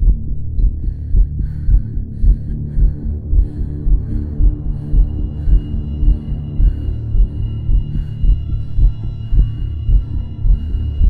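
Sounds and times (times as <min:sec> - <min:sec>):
heartbeat-like low pulse: 0:00.0 - 0:11.0
steady low hum: 0:00.0 - 0:11.0.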